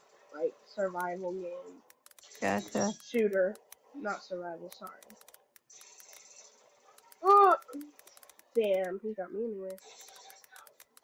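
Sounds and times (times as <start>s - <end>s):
soft clicks: 0.9s - 1.2s, 1.8s - 3.8s, 4.7s - 9.0s, 9.7s - 11.0s.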